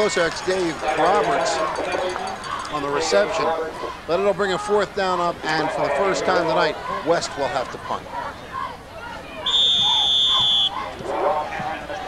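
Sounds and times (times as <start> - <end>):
crowd murmur: 0.0 - 12.0
referee's whistle blast: 9.4 - 10.8.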